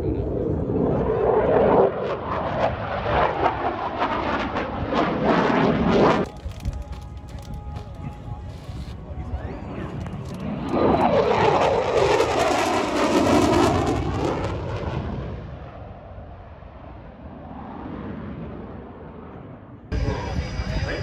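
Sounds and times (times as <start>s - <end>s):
jet aircraft low pass: 0.0s - 21.0s.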